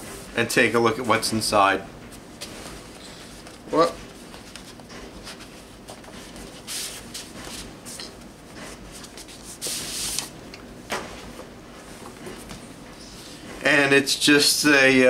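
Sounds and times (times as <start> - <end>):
paper swishes: 4.2 - 10.4
paper and card rustling: 8.8 - 10.4.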